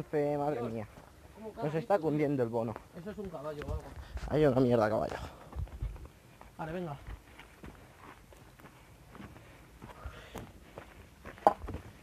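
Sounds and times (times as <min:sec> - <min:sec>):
footsteps on twigs and dry grass: 0:02.6 - 0:12.0.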